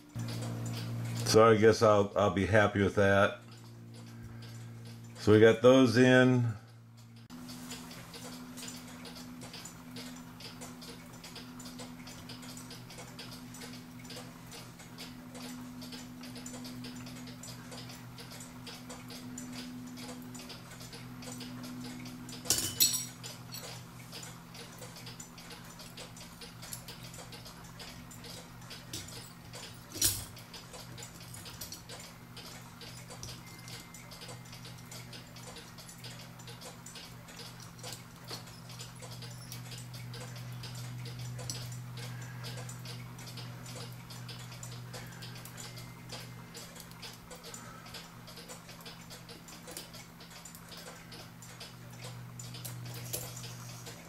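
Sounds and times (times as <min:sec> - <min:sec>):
small metallic clicks: 0:07.0 - 0:54.0.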